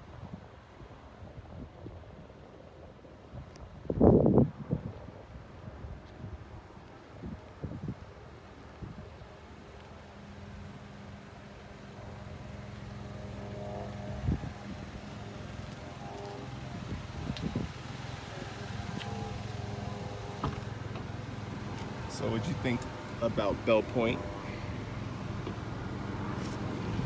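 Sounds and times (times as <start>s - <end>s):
car engine idling: 10.2s - 27.0s.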